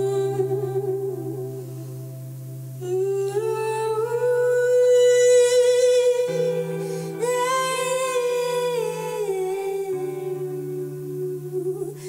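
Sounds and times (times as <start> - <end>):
low sustained tone: 0.0 - 12.0.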